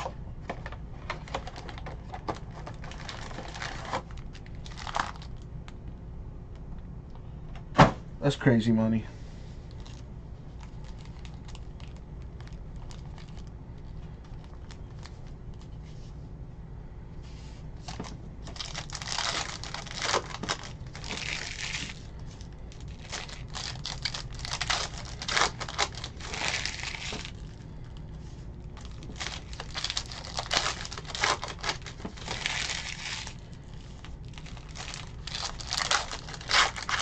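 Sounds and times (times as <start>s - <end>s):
foil wrapper crinkling and tearing: 0.0s - 5.5s, 9.7s - 15.7s, 17.9s - 37.0s.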